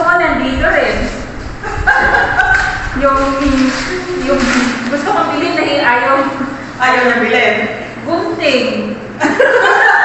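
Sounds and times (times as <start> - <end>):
people talking: 0.0 - 10.0
paper gift wrap rustling: 1.7 - 5.5.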